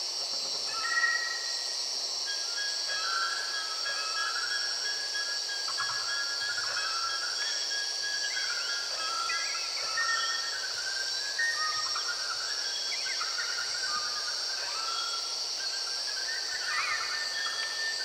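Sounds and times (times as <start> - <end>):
high-pitched insect chorus: 0.0 - 18.0.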